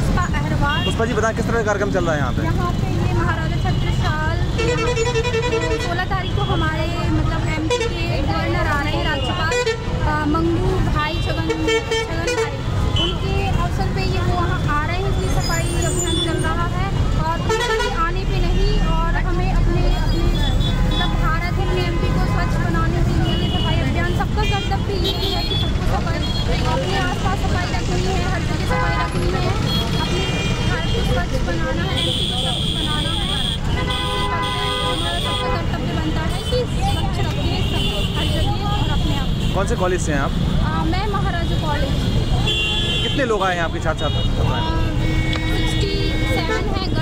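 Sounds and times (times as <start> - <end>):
people talking: 0.0 - 4.6, 5.7 - 33.6, 34.7 - 47.0
road traffic rumble: 0.0 - 47.0
vehicle horns honking: 3.4 - 8.3, 8.9 - 10.3, 10.9 - 13.6, 14.4 - 19.1, 19.9 - 27.2, 28.4 - 40.5, 41.2 - 47.0.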